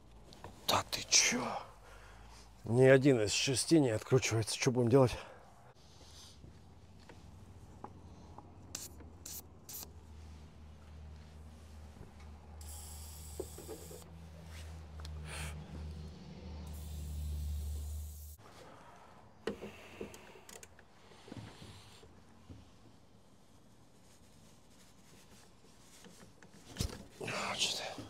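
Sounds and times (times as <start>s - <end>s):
aerosol spray can hissing: 8.7s - 9.9s, 12.6s - 14.0s, 16.7s - 18.4s.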